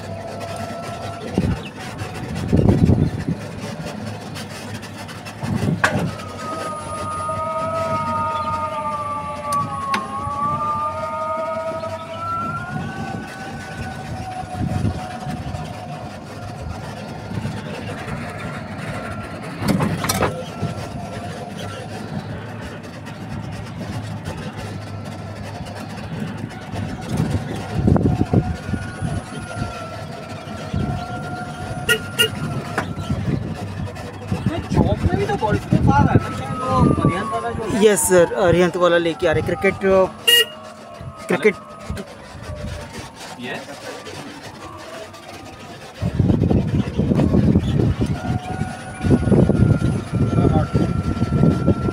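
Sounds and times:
vehicle pitched tone rising: 0.0s - 51.9s.

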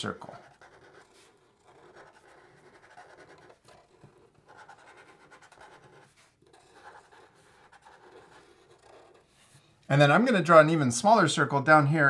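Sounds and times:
marker strokes on paper: 0.0s - 9.8s.

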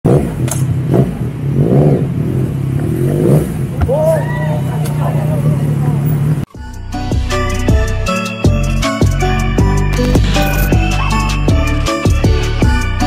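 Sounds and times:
people talking: 3.8s - 6.4s.

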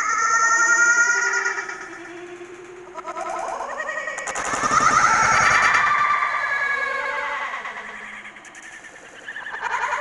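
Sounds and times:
people shrieking with laughter: 3.0s - 8.4s, 9.2s - 10.0s.

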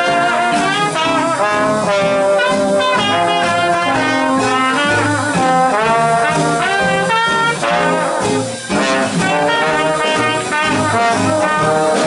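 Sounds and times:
jazz band playing: 0.0s - 12.0s
trombone: 0.0s - 12.0s
trumpet: 0.0s - 12.0s.

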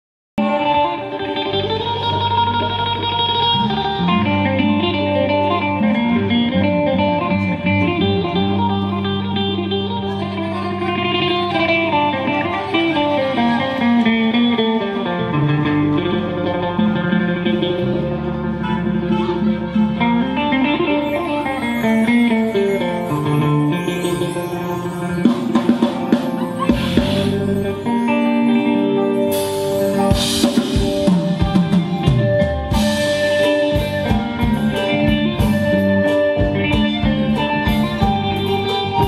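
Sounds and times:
electric guitar: 0.4s - 39.0s
live dance band playing: 0.4s - 39.0s.

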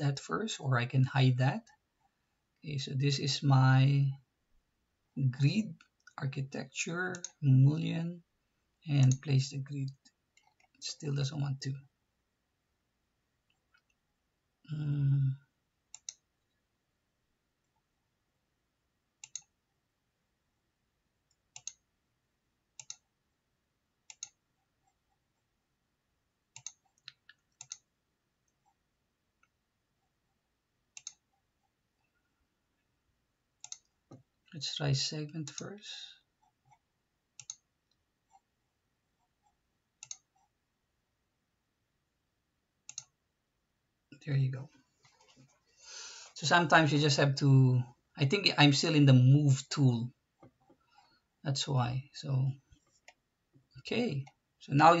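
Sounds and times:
computer mouse clicks: 7.1s - 7.4s, 15.9s - 16.3s, 19.2s - 19.6s, 21.3s - 21.8s, 22.8s - 23.1s, 24.1s - 25.0s, 26.5s - 27.9s, 30.9s - 31.4s, 33.6s - 34.2s, 37.4s - 38.5s, 39.3s - 40.5s, 42.8s - 43.2s.

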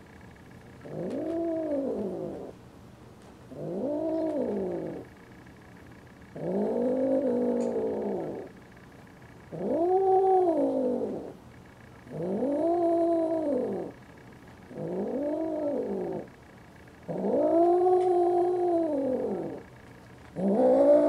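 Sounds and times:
cats yowling: 0.8s - 2.5s, 9.5s - 11.4s, 12.1s - 13.9s, 17.0s - 19.6s, 20.4s - 21.0s.

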